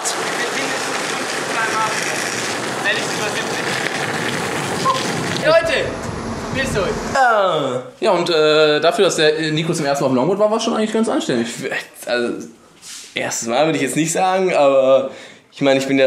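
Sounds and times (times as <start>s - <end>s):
skateboard wheels rolling on asphalt: 0.0s - 7.2s.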